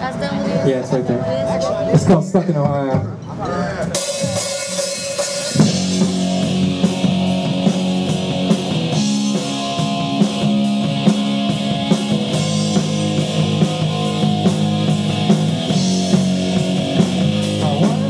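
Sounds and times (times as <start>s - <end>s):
rock band playing: 0.0s - 18.0s.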